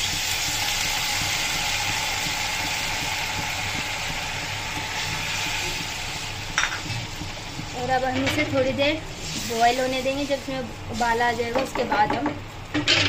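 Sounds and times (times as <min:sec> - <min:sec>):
water sizzling in hot oil: 0:00.0 - 0:13.0.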